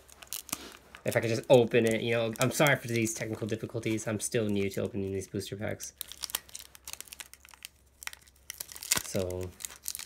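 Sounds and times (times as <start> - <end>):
foil wrapper crinkling: 0.0 - 10.0.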